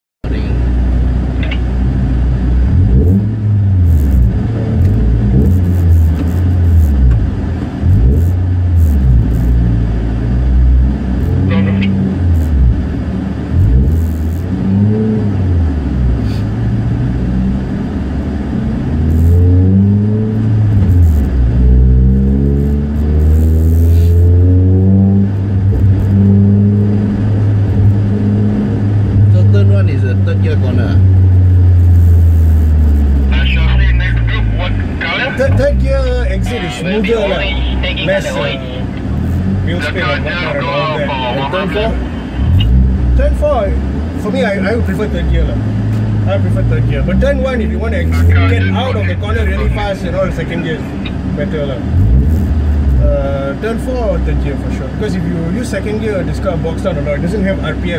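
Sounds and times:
car engine revving: 0:00.2 - 0:57.9.

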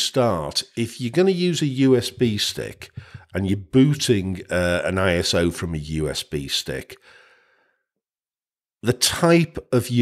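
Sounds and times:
man speaking: 0:00.0 - 0:07.0, 0:08.8 - 0:10.0.

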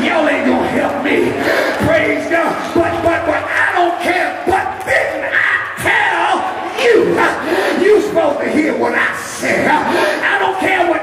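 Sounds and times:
congregation calling out: 0:00.0 - 0:11.0
preacher shouting through pa: 0:00.0 - 0:11.0.

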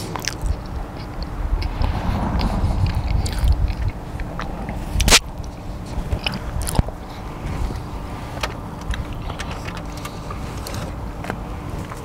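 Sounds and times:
man chewing food: 0:00.0 - 0:12.0.

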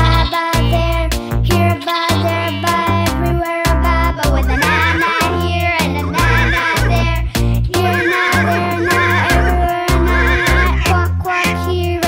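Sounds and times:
upbeat children's song: 0:00.0 - 0:12.0
cartoon horse whinnying: 0:04.5 - 0:07.1, 0:07.8 - 0:10.9.

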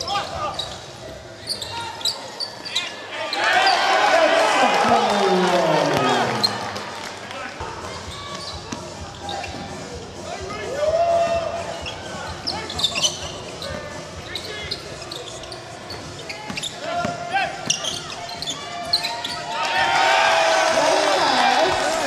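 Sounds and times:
sneakers squeaking: 0:00.0 - 0:03.9, 0:07.9 - 0:10.0, 0:11.6 - 0:19.6
players calling out: 0:01.5 - 0:07.2, 0:20.6 - 0:22.0.

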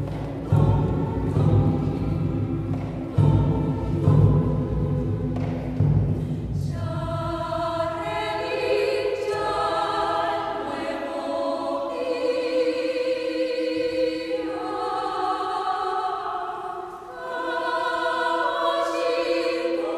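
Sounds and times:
mixed choir singing: 0:00.0 - 0:19.9.

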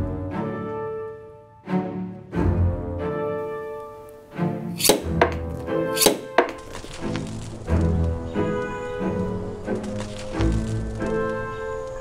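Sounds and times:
cello-led string music: 0:00.0 - 0:12.0
sharp bright hits: 0:04.8 - 0:06.7.

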